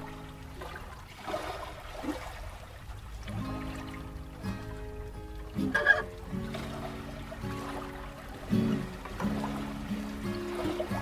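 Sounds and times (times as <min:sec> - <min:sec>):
acoustic guitars playing: 0:00.0 - 0:00.6, 0:03.3 - 0:11.0.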